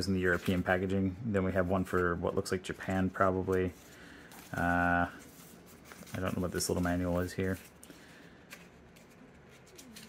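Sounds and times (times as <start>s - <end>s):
paper rustling: 0.0s - 10.0s.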